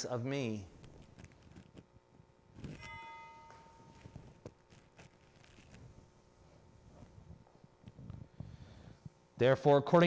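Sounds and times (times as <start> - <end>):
ringing metallic strike: 2.7 - 4.5.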